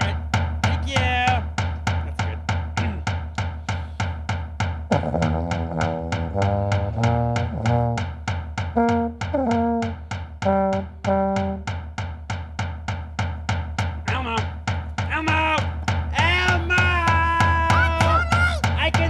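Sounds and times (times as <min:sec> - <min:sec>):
hand drum beating steadily: 0:00.0 - 0:19.0
tuba low notes: 0:04.9 - 0:11.9.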